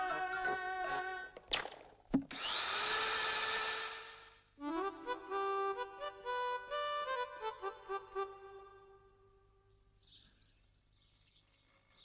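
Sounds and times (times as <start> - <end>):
electric drill grinding into wall: 2.3 - 4.4
bright tune with held notes: 4.6 - 9.1.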